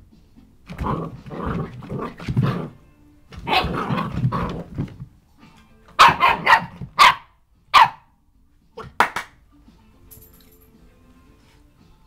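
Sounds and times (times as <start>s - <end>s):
puppy growling: 0.7s - 2.8s, 3.4s - 5.0s
puppy barking: 3.4s - 4.4s, 6.0s - 8.1s.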